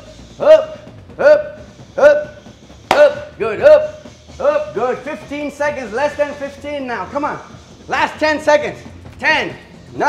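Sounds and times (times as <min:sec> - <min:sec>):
boxing glove punching bag: 0:02.9 - 0:03.3.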